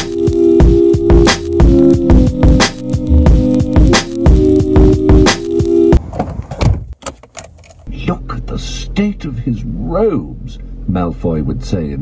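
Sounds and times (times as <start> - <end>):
car door clunk: 6.0 - 7.9.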